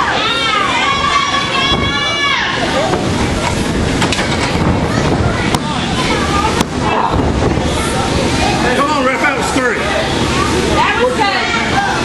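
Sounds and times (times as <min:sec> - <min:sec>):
crowd shouting: 0:00.0 - 0:03.0.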